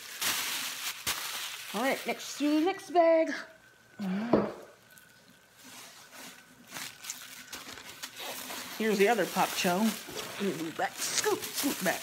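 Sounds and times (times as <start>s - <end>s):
plastic bag crinkling: 0.0s - 2.8s, 4.8s - 12.0s.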